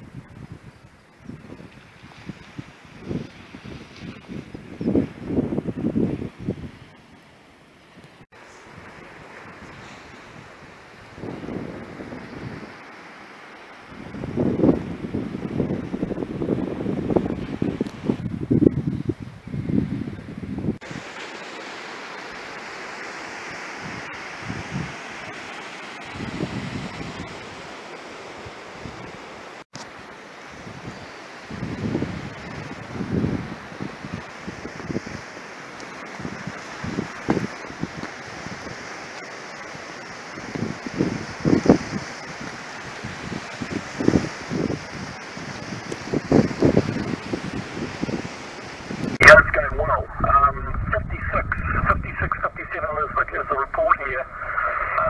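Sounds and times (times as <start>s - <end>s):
wind buffeting microphone: 0.0s - 7.0s, 8.0s - 12.8s, 13.9s - 21.1s, 23.5s - 25.1s, 26.0s - 27.7s, 30.6s - 35.3s, 36.0s - 38.9s, 40.3s - 55.0s
surf washing over rocks: 1.3s - 6.7s, 8.0s - 18.2s, 20.8s - 55.0s.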